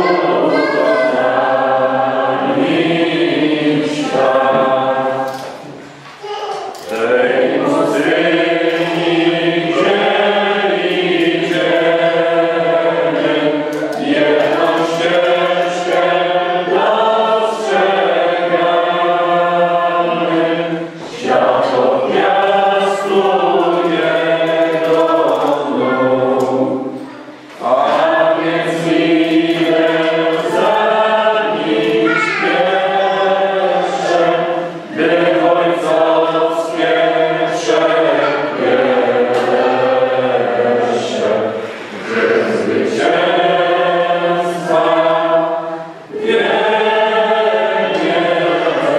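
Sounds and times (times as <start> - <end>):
choir singing long notes: 0.0 - 6.0, 6.8 - 48.9.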